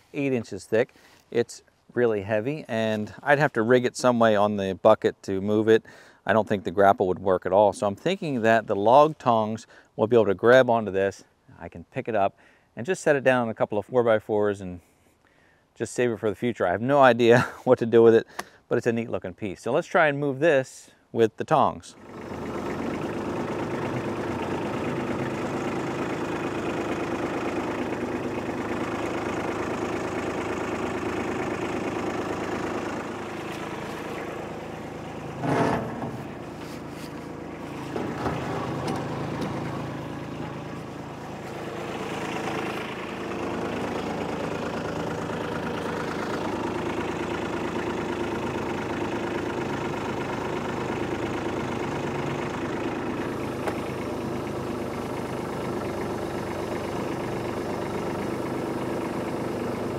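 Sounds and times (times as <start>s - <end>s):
tractor diesel engine idling: 2.0s - 10.6s, 22.0s - 59.9s.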